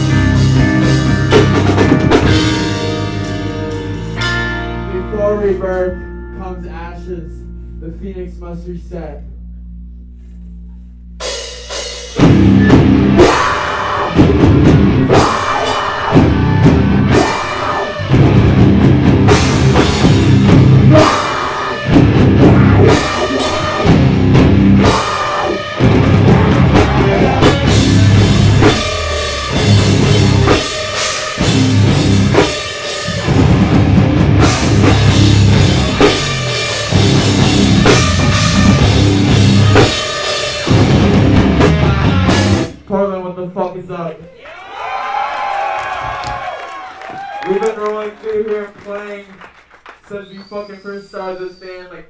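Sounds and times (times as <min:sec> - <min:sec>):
distorted electric guitars: 0:00.0 - 0:05.4, 0:08.4 - 0:42.9
drum kit with cymbals: 0:00.0 - 0:05.9, 0:11.2 - 0:42.8
bass guitar: 0:00.0 - 0:44.1
low hum: 0:07.2 - 0:11.3.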